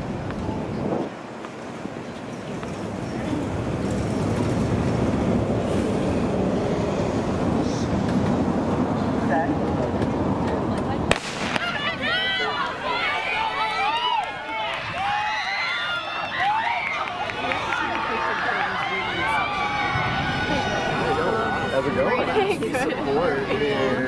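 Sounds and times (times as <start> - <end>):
spectators yelling and cheering: 10.7 - 24.0
starting pistol shot: 11.1 - 11.8.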